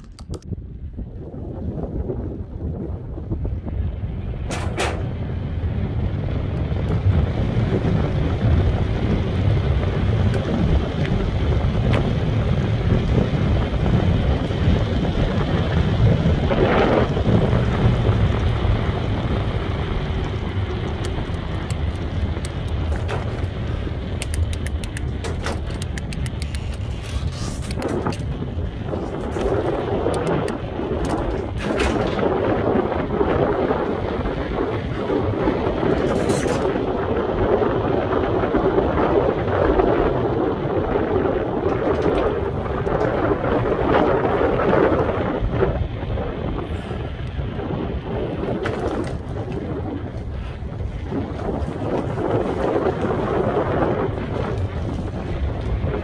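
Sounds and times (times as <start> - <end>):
sharp clicks and knocks: 0.0 - 0.5, 4.5 - 5.2, 20.2 - 32.4
wind buffeting microphone: 0.0 - 56.0.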